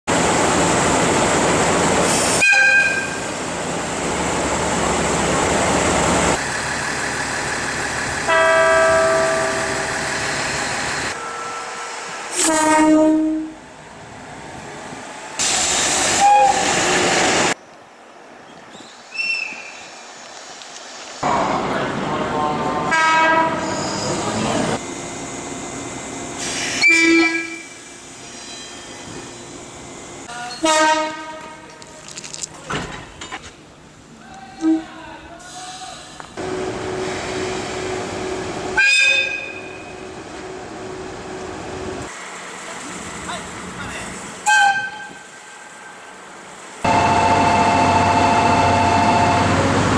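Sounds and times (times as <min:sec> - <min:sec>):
train engine and rail noise: 0:00.1 - 0:49.9
train horn blasts: 0:02.4 - 0:03.2, 0:08.3 - 0:09.8, 0:12.3 - 0:13.6, 0:22.9 - 0:23.8, 0:30.6 - 0:31.7, 0:38.8 - 0:39.8, 0:44.4 - 0:45.3.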